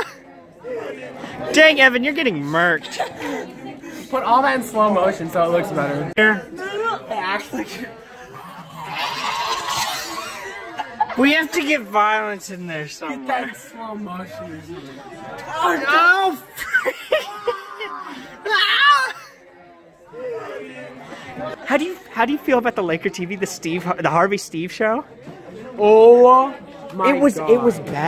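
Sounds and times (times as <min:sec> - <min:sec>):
voices chattering: 0:00.0 - 0:28.0
young person shrieking: 0:17.4 - 0:19.2.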